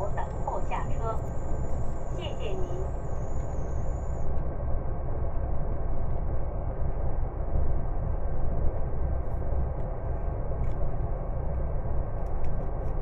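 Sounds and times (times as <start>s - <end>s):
diesel train rumbling: 0.0s - 13.0s.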